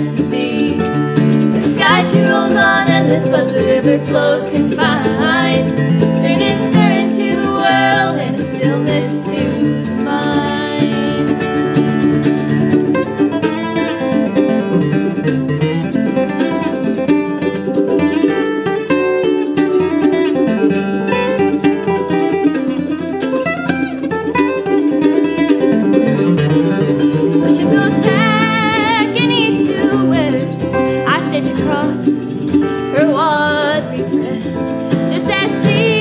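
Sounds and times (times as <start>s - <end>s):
acoustic guitar: 0.0s - 36.0s
mandolin: 0.0s - 36.0s.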